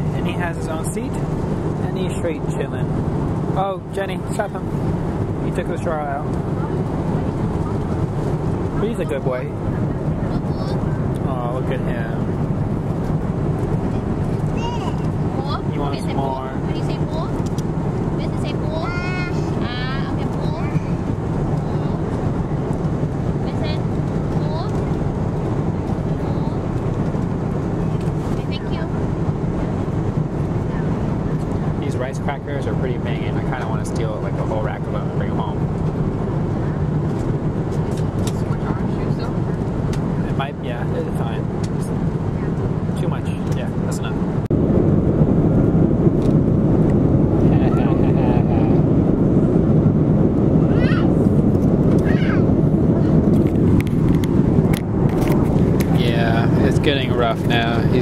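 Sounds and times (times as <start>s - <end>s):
voices: 0.0s - 4.7s, 5.4s - 12.4s, 13.8s - 22.7s, 23.3s - 25.1s, 25.9s - 26.8s, 27.7s - 29.0s, 30.6s - 35.7s, 37.8s - 44.2s, 47.4s - 49.0s, 52.0s - 53.3s, 55.8s - 58.0s
airliner cabin drone: 0.0s - 58.0s.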